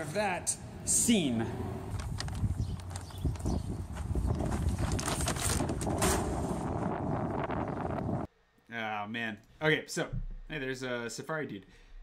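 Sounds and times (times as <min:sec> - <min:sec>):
small crackles: 0:01.9 - 0:03.6, 0:04.2 - 0:05.9.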